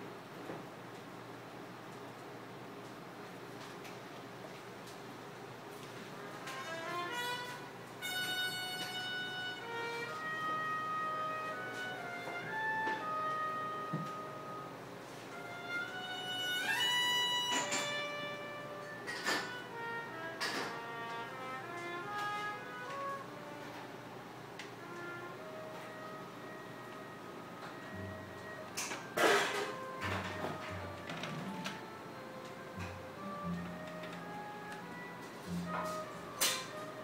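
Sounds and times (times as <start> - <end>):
violin music from record: 6.5 - 23.6, 29.7 - 37.0.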